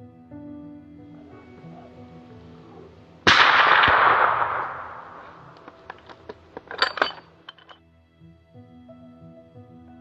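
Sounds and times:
rifle shot: 3.2 - 6.1.

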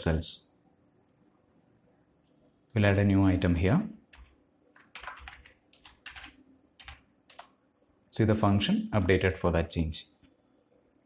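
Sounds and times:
keyboard keystrokes: 4.1 - 7.5.

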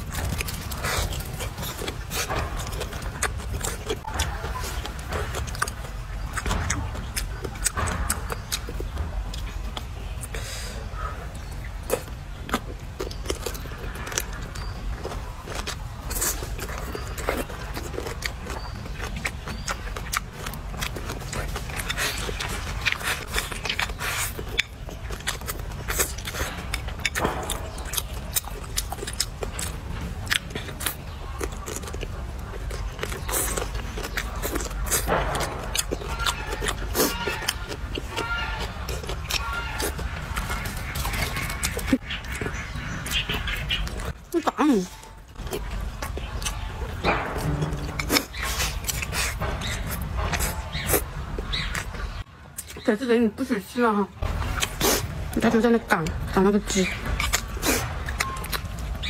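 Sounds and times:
chewing crisp vegetables: 0.0 - 59.0.

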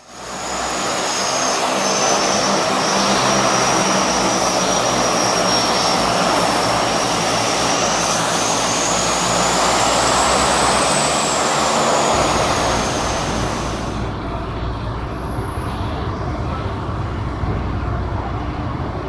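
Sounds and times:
high turbine whine: 0.0 - 19.0
propeller drone: 0.0 - 19.0.

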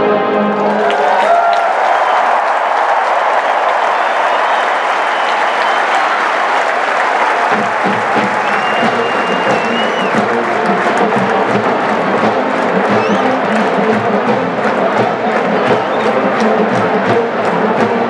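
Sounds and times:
crowd cheering and applauding: 0.0 - 18.0.

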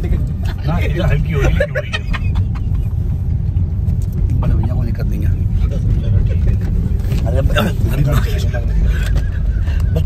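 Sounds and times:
car engine rumble: 0.0 - 10.0
road noise: 0.0 - 10.0.

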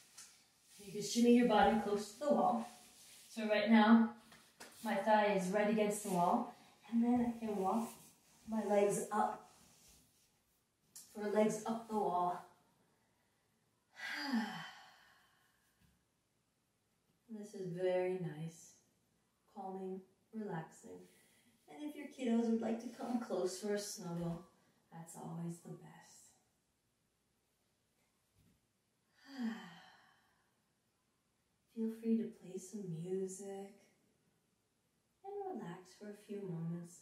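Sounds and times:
woman sighing: 14.0 - 15.0.

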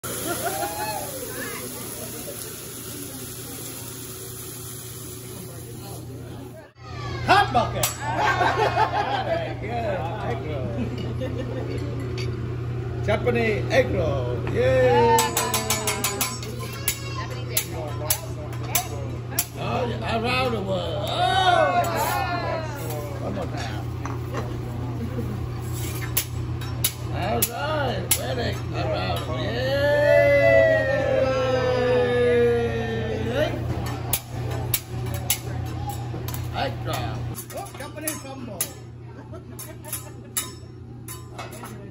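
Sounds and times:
sizzling on a griddle: 0.0 - 6.7, 23.8 - 27.5
flambe flame hissing: 0.0 - 6.8, 22.8 - 27.1
metal spatula clacking on griddle: 15.2 - 19.6, 33.8 - 38.9, 39.6 - 41.9.

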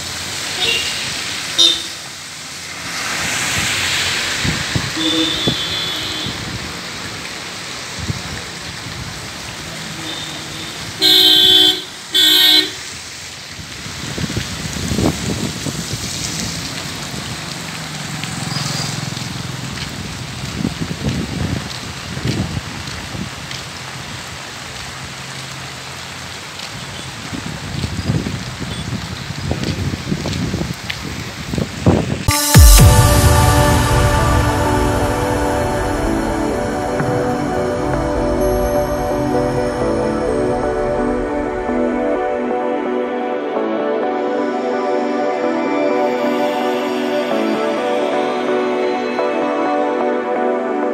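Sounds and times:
traffic noise: 0.0 - 49.4
vehicle horn honking: 0.6 - 1.0, 1.6 - 2.0, 5.0 - 6.5, 9.9 - 12.8
loud music: 32.3 - 50.9.

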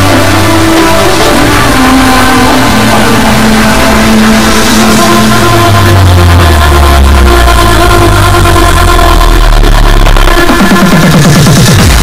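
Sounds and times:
distorted held synth tone: 0.0 - 12.0
hardcore electronic music: 0.0 - 12.0.

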